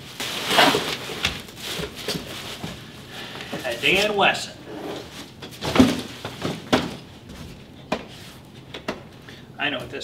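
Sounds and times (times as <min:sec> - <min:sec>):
bubble wrap crinkling: 0:00.0 - 0:04.4
knocks of plastic case and box: 0:05.6 - 0:07.0.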